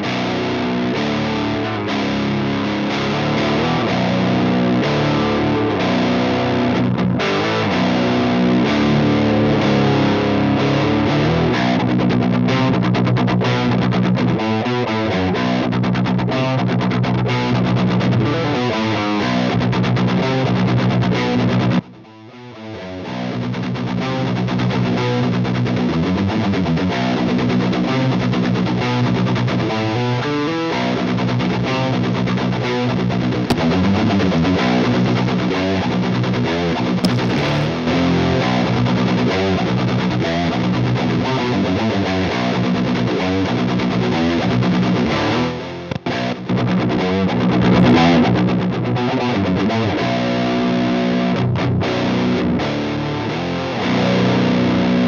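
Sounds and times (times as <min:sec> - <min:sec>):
distorted electric guitar ringing: 0:37.0 - 0:38.5.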